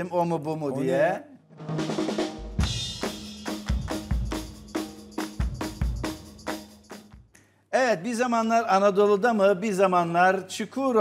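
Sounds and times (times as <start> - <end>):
drum-kit jingle: 1.6 - 7.2.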